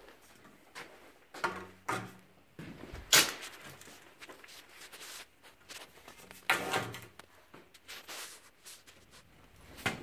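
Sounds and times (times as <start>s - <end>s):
scuffing and rubbing noises: 2.6s - 10.0s.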